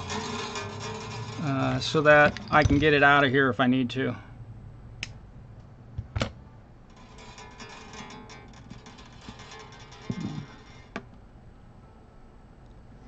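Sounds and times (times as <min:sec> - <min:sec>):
acoustic guitar strings jangling: 0:00.0 - 0:03.1, 0:06.9 - 0:10.9.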